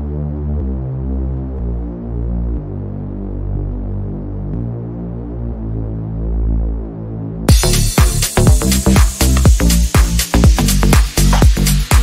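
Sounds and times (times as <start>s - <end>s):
low synthesizer chords: 0.0s - 12.0s.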